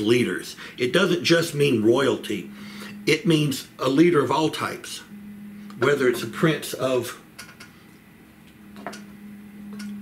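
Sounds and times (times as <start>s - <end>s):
man humming: 1.7s - 4.0s.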